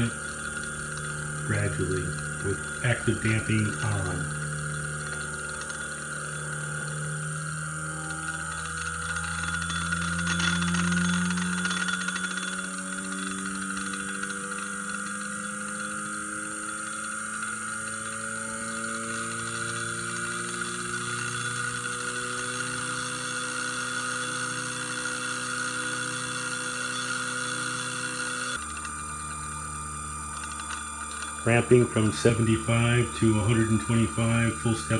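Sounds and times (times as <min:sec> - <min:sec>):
steady motor hum: 0:00.0 - 0:34.9
stepper motor whine rising in pitch: 0:00.0 - 0:34.9.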